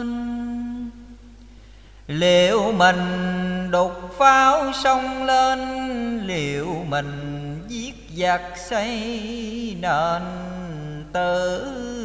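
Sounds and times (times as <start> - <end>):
person chanting verse: 0.0 - 1.1, 2.1 - 12.0.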